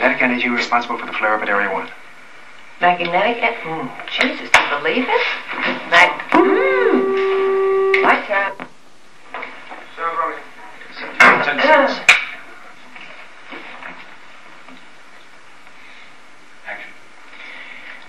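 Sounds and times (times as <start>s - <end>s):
low room hum: 0.0s - 18.0s
voice holding a note: 6.4s - 8.6s.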